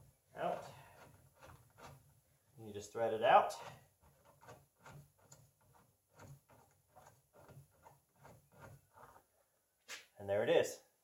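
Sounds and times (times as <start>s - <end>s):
tool ticks and scrapes: 0.4s - 2.2s, 3.4s - 9.3s.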